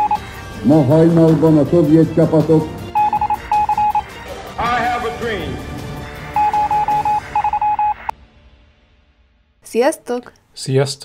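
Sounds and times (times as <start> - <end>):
short electronic beeps: 3.0 - 4.0, 6.4 - 8.1.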